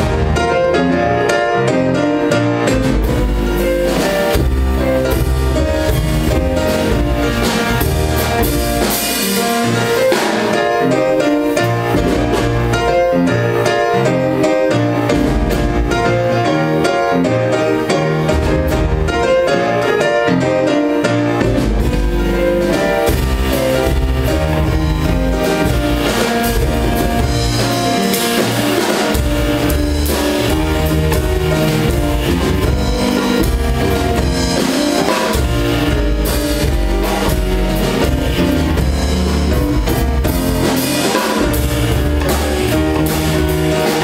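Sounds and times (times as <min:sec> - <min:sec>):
drum kit with cymbals: 0:00.0 - 0:44.0
grand piano chords and melody: 0:00.0 - 0:44.0
walking double bass: 0:00.0 - 0:44.0.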